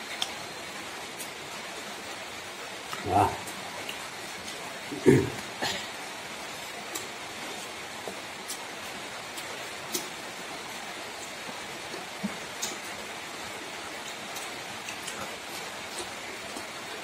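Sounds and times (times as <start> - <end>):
people eating by hand: 0.0 - 17.0
steady hiss: 0.0 - 17.0.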